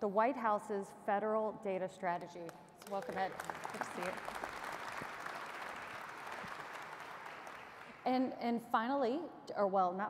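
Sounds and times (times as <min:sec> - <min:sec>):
audience applauding: 0:02.8 - 0:08.0.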